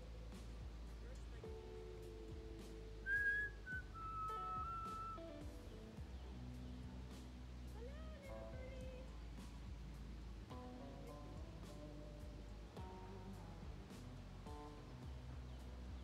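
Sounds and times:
soft low held tones: 0.0s - 16.0s
person whistling a slow tune: 3.0s - 5.2s.

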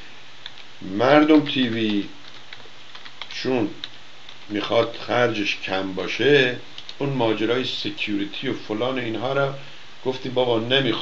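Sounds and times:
keyboard key clicks: 6.8s - 7.0s.

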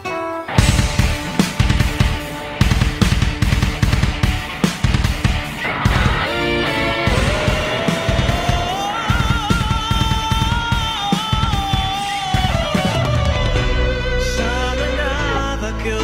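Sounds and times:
rock band playing: 0.0s - 15.6s
sustained note gliding upward: 5.6s - 10.6s.

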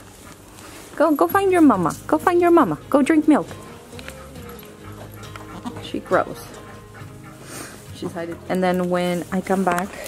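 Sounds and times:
soft background music: 0.3s - 10.0s.

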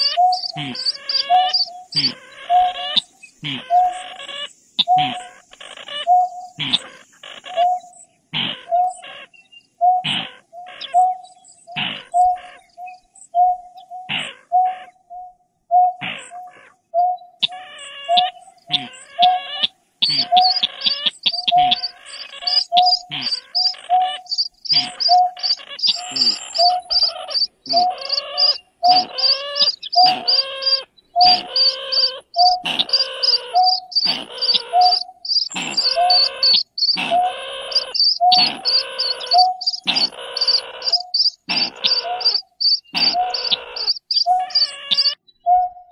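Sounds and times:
low hollow bird hoot: 0.0s - 9.1s, 9.8s - 45.9s
harsh bird calls with high notes: 0.0s - 45.9s.

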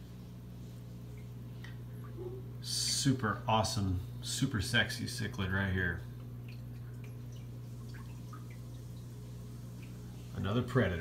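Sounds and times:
water dripping: 0.8s - 2.2s, 6.1s - 10.4s.

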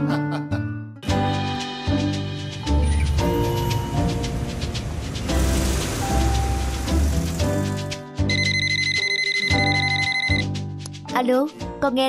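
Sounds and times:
mobile phone ringing: 8.3s - 10.5s.

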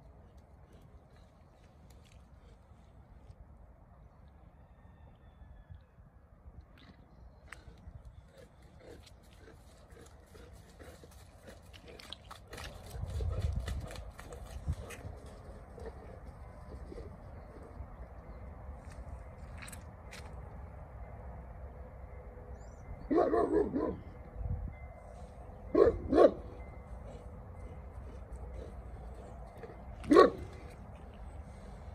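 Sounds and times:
footsteps on wet gravel: 8.5s - 16.0s, 18.8s - 20.5s, 28.2s - 31.9s.

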